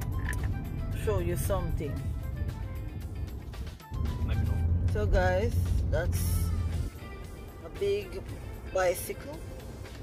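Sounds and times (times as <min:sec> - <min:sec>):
music playing: 0:00.0 - 0:10.0
road and engine noise inside car: 0:00.0 - 0:10.0.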